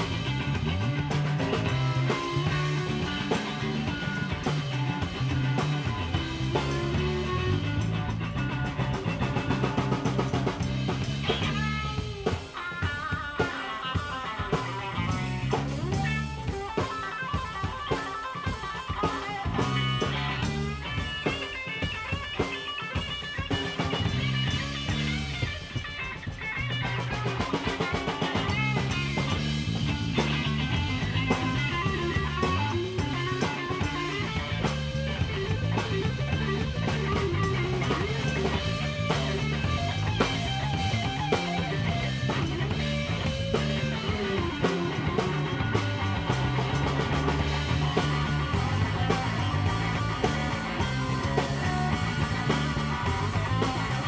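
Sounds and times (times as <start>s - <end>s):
lead guitar high melodic lines: 0.0s - 54.0s
live rock band playing: 0.0s - 54.0s.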